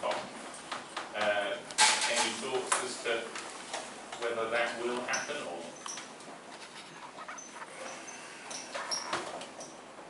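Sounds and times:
marker squeaking on whiteboard: 5.1s - 9.9s.

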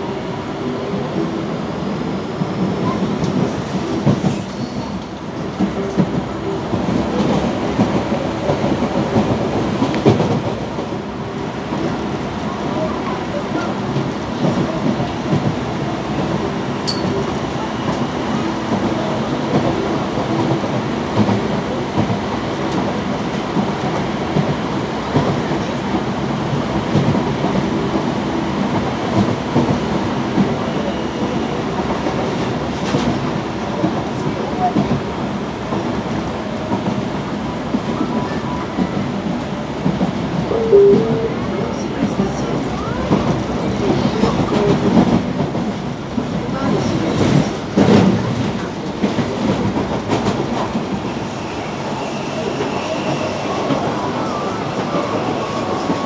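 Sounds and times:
train running on track: 0.0s - 56.0s.

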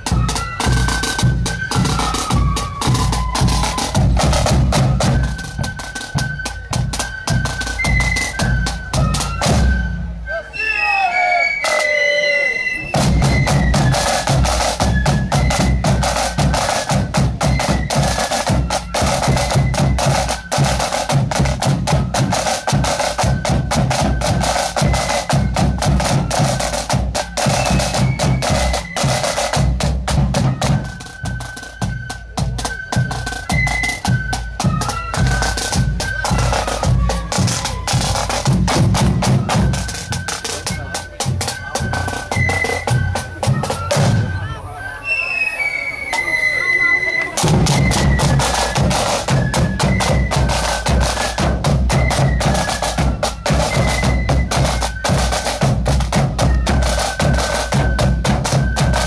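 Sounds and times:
snare and bass drums: 0.0s - 10.2s, 12.9s - 44.6s, 47.4s - 59.0s
flutes playing high melody: 0.0s - 59.0s.

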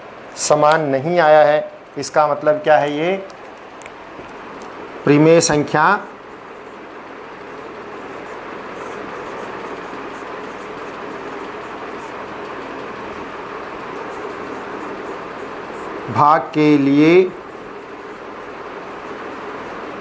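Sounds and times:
steady rushing background noise: 0.0s - 20.0s
marker pen on whiteboard: 6.4s - 20.0s.

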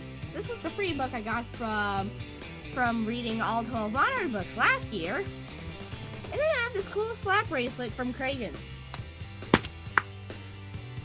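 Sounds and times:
slap bracelet snapping on wrist: 8.9s - 10.1s.

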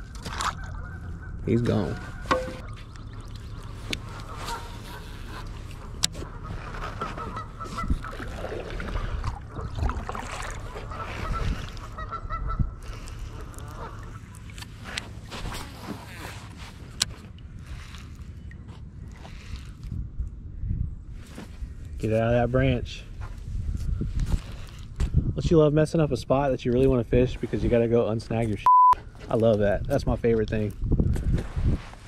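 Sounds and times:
wind rumble on microphone: 0.0s - 14.3s, 18.9s - 27.8s, 29.5s - 32.0s
distant waterfowl honking: 0.5s - 9.8s, 10.6s - 14.4s.

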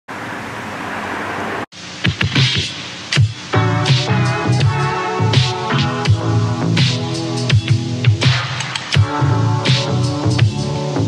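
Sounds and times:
quieter hiss: 0.1s - 11.0s
steady hiss: 0.1s - 11.0s.

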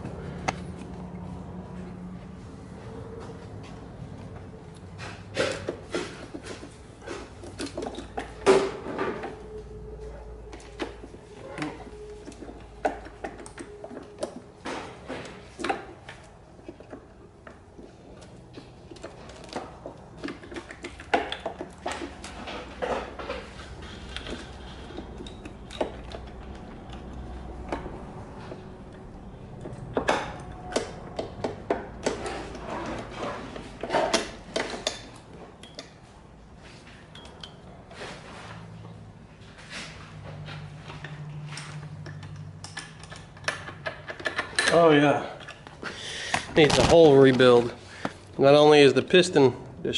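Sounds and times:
metallic clicks and knocks of tools: 10.5s - 36.1s, 37.1s - 37.7s, 40.6s - 45.7s.

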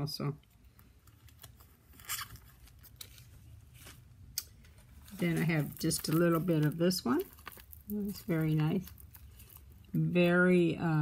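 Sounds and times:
beads rustling and clicking: 4.6s - 10.0s.

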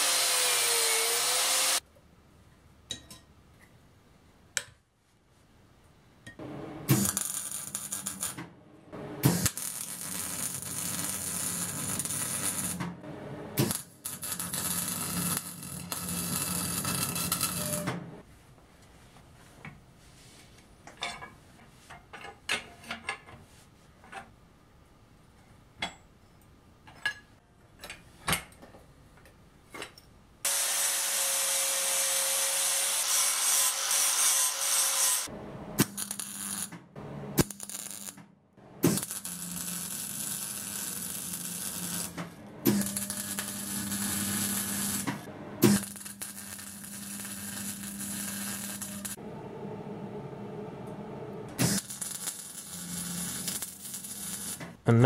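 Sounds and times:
welding arc crackling sizzle: 0.0s - 1.8s, 6.8s - 8.4s, 9.2s - 12.8s, 13.6s - 17.8s, 30.5s - 36.7s, 37.4s - 38.2s, 38.8s - 49.2s, 51.6s - 54.7s.

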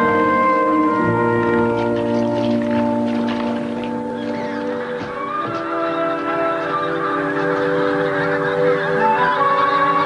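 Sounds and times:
orchestral music sustained chords: 0.0s - 10.0s
geese honking: 0.8s - 10.0s.

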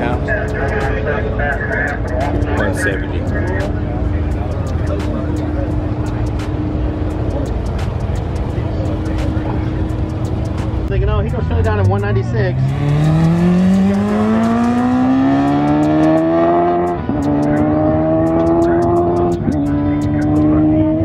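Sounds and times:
car engine accelerating hard: 0.0s - 21.0s.

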